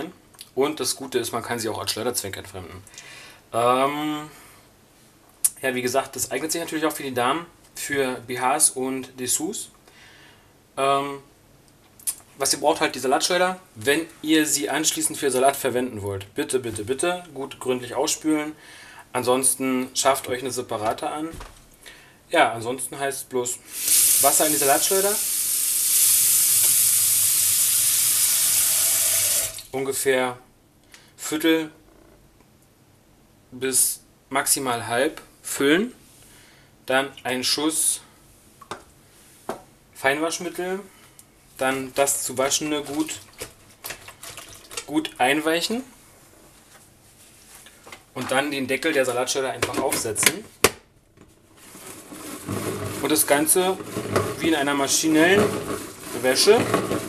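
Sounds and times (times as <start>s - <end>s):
tap water running into bowl: 28.2s - 29.7s
plastic lid scraping onto bowl: 51.6s - 57.0s.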